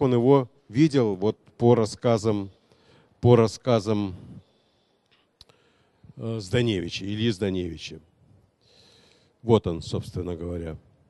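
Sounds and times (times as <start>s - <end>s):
man talking: 0.0s - 2.6s, 3.2s - 4.5s, 6.1s - 8.1s, 9.4s - 10.9s.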